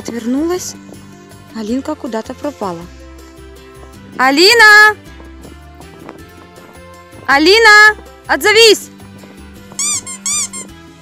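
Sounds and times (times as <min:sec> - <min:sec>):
quiet background music: 0:00.0 - 0:11.0
high cartoon squeaks: 0:09.8 - 0:10.8.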